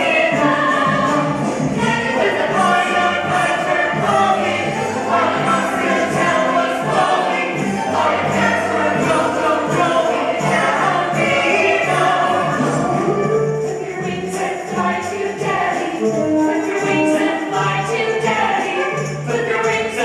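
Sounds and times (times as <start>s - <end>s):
ensemble singing in chorus: 0.0s - 16.1s
steady percussion beat: 0.0s - 20.0s
live band: 10.4s - 19.2s.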